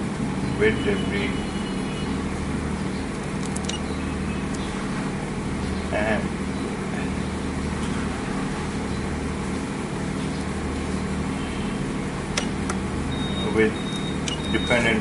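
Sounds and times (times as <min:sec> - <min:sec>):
low machine hum: 0:00.0 - 0:15.0.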